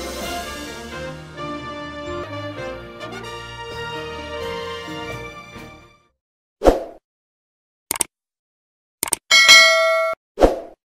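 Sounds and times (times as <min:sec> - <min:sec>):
quick clicks: 0:07.9 - 0:08.1, 0:09.0 - 0:09.3
bright bell ding: 0:09.3 - 0:10.2.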